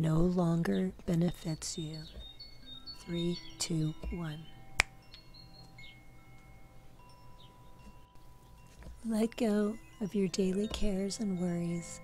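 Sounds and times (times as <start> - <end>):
faint chime tones: 1.4 - 12.0.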